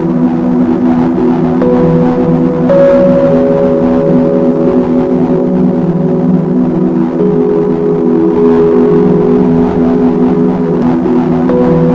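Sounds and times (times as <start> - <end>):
sustained chord music: 0.0 - 11.9.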